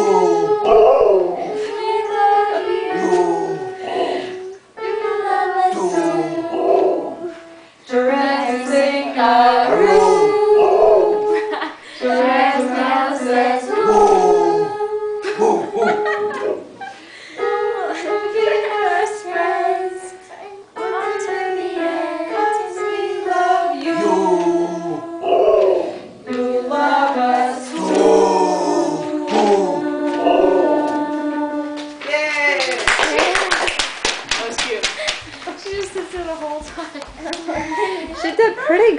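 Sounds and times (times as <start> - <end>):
people singing together: 0.0 - 33.8
husky howling: 9.7 - 11.2
hand clapping: 31.8 - 37.6.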